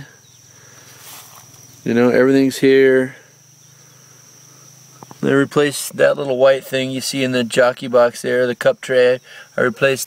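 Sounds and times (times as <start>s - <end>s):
high-pitched insect trill: 0.0s - 10.0s.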